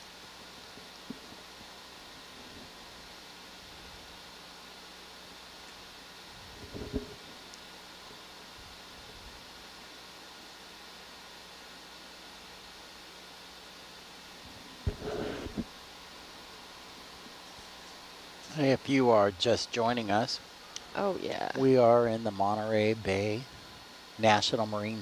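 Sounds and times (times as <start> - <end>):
faint constant hum: 0.0 - 25.0
steady low hiss: 0.0 - 25.0.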